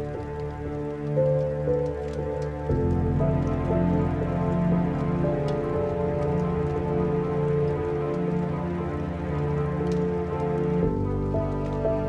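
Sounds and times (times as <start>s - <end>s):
rain falling: 0.0s - 12.0s
slow melancholic piano music: 0.0s - 12.0s.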